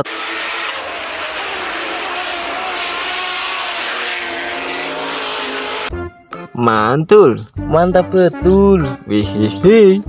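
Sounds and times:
car engines racing: 0.0s - 6.0s
road noise: 0.0s - 6.6s.

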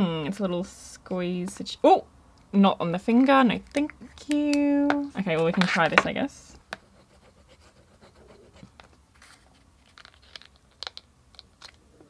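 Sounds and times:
paper crinkling and tapping: 3.6s - 6.9s, 8.6s - 11.8s.

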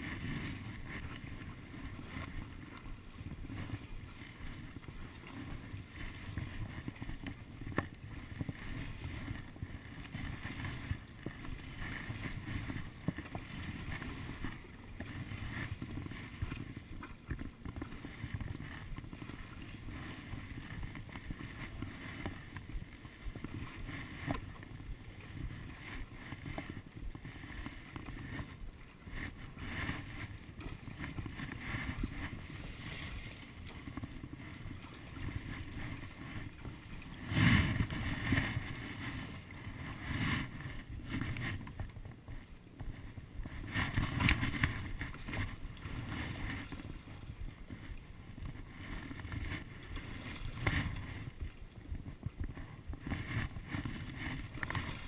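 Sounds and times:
paddle strokes splashing water: 0.0s - 55.0s
water lapping: 0.0s - 55.0s.

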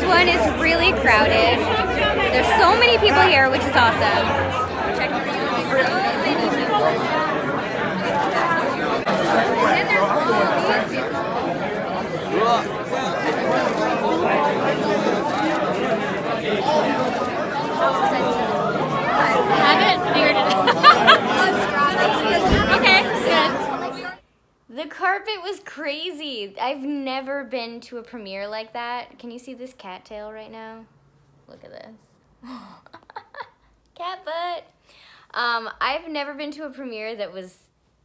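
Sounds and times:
crowd chatter: 0.0s - 24.2s.

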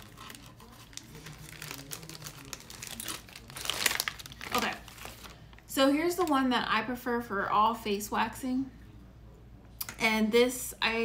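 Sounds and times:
packaging crinkling: 0.0s - 5.7s.

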